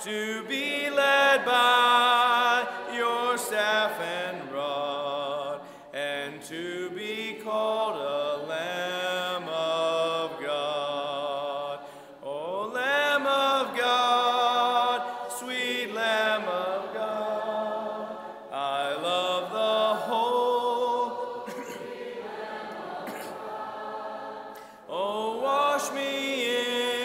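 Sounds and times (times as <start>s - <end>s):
congregation singing a hymn: 0.0s - 27.0s.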